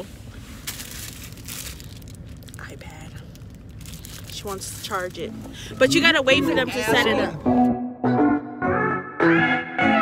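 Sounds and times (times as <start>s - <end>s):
plastic wrapping crinkling: 0.4s - 5.3s.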